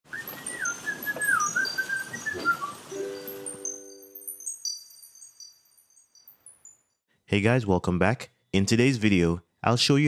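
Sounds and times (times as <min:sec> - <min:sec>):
whistle-like bird call: 0:00.1 - 0:03.3
held chord with tinkling chimes: 0:02.8 - 0:07.1.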